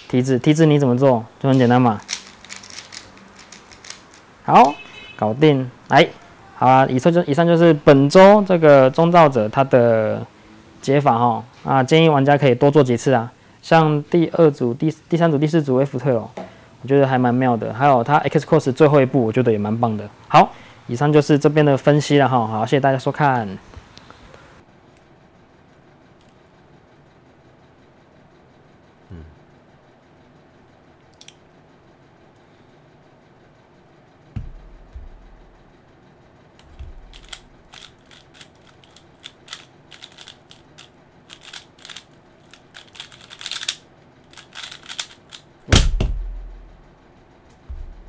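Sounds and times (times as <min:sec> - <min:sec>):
cube thump on timer: 0:34.4 - 0:35.5
soft knocks: 0:34.4 - 0:35.5.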